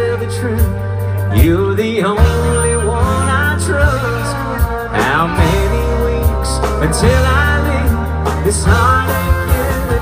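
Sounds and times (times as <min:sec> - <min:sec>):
acoustic guitar: 0:00.0 - 0:10.0
bass: 0:00.0 - 0:10.0
fiddle melody: 0:00.0 - 0:10.0
low drum beat: 0:00.0 - 0:10.0.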